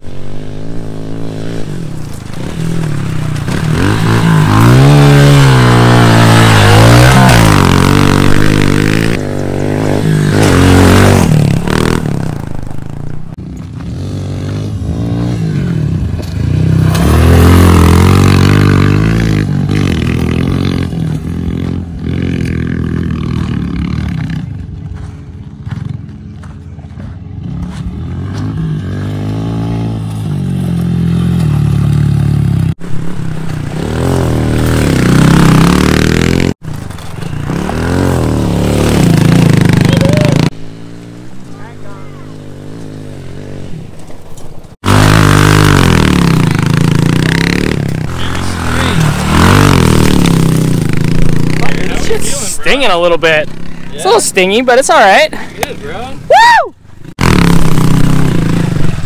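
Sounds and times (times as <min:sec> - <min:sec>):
motorbike engine revving: 0:00.0 - 0:25.0, 0:27.0 - 0:56.1, 0:57.0 - 0:59.0.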